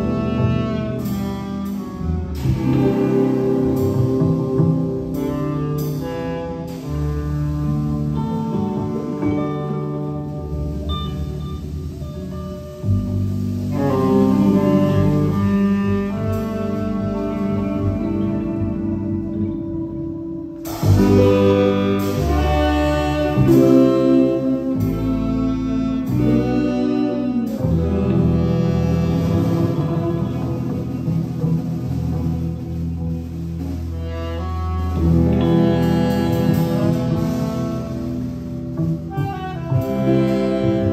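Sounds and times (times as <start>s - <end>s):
live band playing: 0.0s - 40.9s
low upright bass notes: 0.0s - 40.9s.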